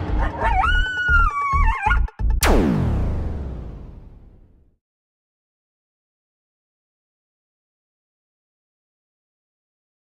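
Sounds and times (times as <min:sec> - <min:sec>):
dog howling: 0:00.2 - 0:02.1.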